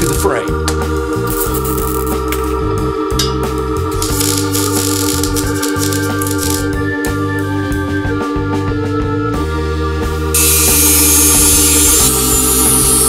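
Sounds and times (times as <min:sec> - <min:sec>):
bass line: 0:00.0 - 0:13.0
organ chords: 0:00.0 - 0:13.0.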